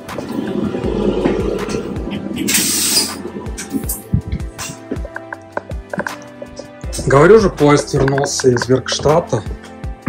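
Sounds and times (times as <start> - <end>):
toilet flushing rumble: 0.0 - 4.6.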